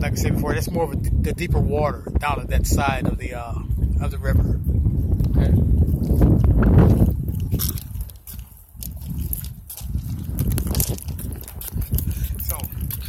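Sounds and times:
wind rumbling on microphone: 0.0s - 13.0s.

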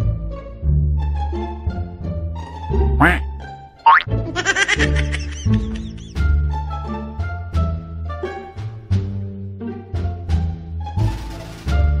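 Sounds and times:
playful background music: 0.0s - 12.0s.

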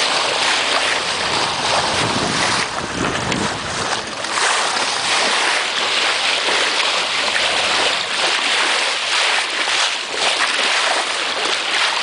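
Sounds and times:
water rushing along boat bow: 0.0s - 12.0s
wind buffeting microphone: 0.3s - 8.7s.

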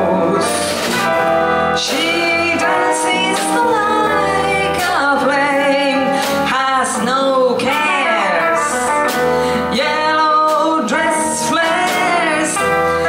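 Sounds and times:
live band with piano and drums: 0.0s - 13.0s
woman singing: 1.8s - 13.0s.

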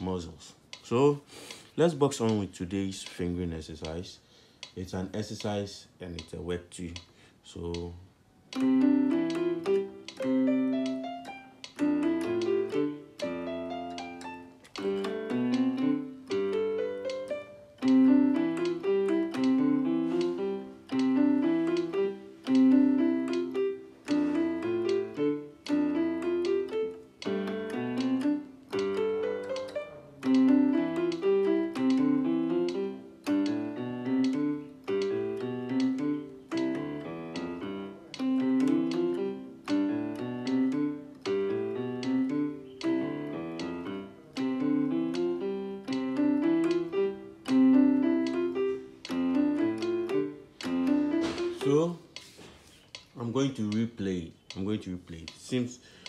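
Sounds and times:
piano finger exercise runs: 0.0s - 56.0s.

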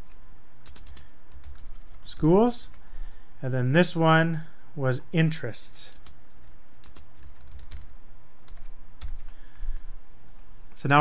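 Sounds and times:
typing on computer keyboard: 0.6s - 2.1s, 5.9s - 7.9s.

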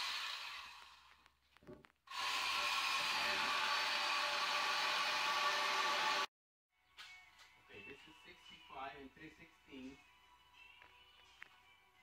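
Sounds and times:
small electric motor whining: 2.1s - 6.3s.

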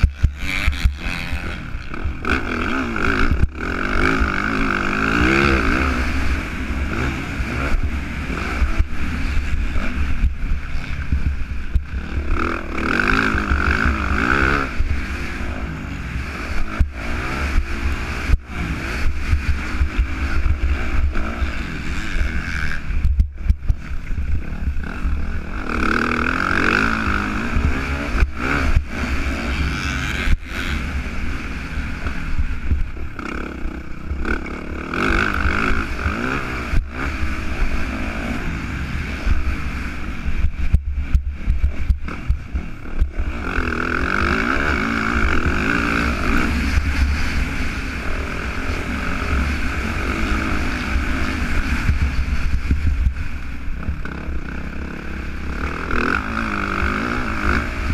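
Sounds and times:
motocross bike engine revving: 0.0s - 57.9s.

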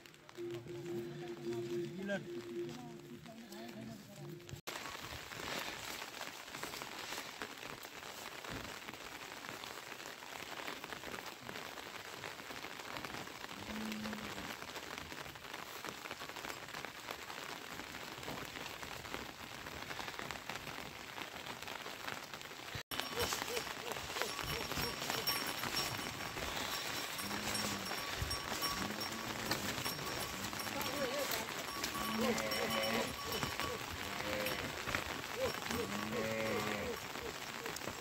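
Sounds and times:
rain pattering: 0.0s - 38.0s.

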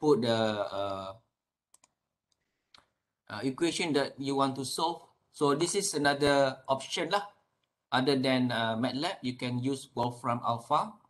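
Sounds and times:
faint computer mouse clicks: 1.7s - 2.9s
man's voice: 3.3s - 7.3s, 7.9s - 11.0s.

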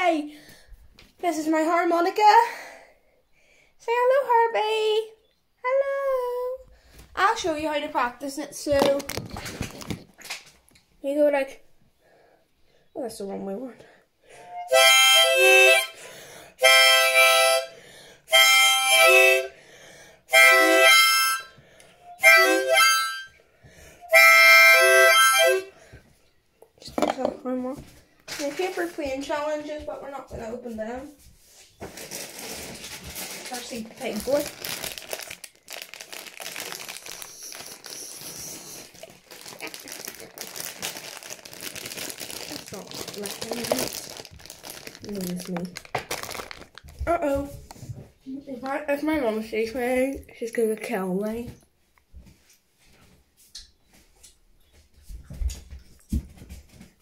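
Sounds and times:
child's voice: 5.7s - 6.6s, 42.7s - 44.0s
plastic wrapper crinkling and tearing: 8.6s - 10.7s, 31.9s - 47.8s
harmonica phrases: 14.3s - 19.6s, 20.3s - 25.8s, 36.6s - 40.2s.

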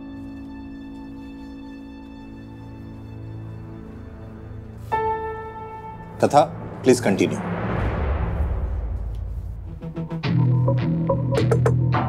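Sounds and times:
deep low rumble: 4.0s - 11.0s
hissing swish: 4.8s - 10.2s.

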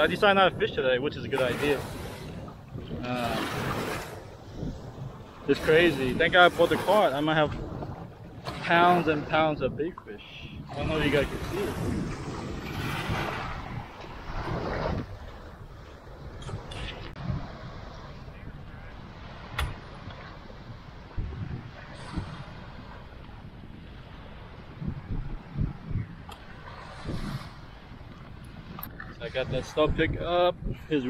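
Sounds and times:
small waves washing onto sand: 0.0s - 31.0s
wind rumbling on microphone: 0.0s - 31.0s.

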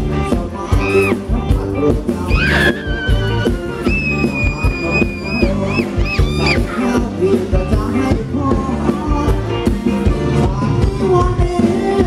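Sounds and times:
steady drum beat: 2.3s - 10.3s.

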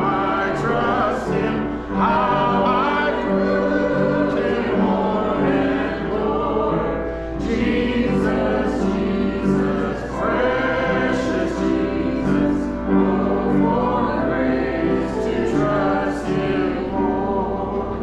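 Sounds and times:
congregation singing a hymn: 0.0s - 18.0s.

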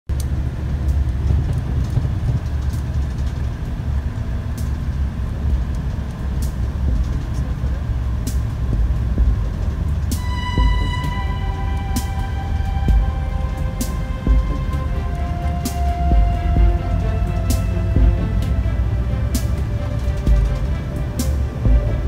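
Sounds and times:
vehicle low rumble: 0.1s - 22.0s.

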